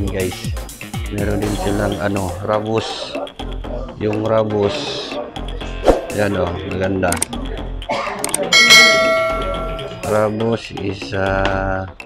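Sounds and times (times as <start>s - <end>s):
bell chime ding: 8.6s - 10.1s.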